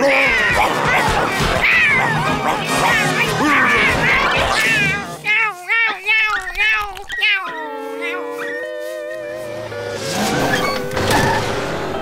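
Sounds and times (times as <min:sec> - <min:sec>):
cartoon creature howling: 0:00.0 - 0:10.8.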